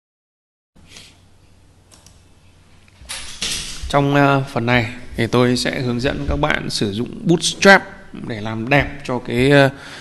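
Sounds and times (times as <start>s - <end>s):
faint room hiss: 0.8s - 10.0s
man speaking: 3.8s - 9.9s
loud intake of breath: 9.8s - 10.0s.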